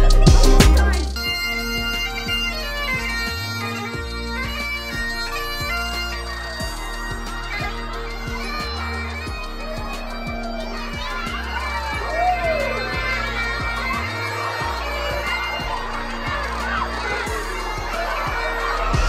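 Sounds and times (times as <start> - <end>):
bagpipes playing a tune: 0.0 - 19.0.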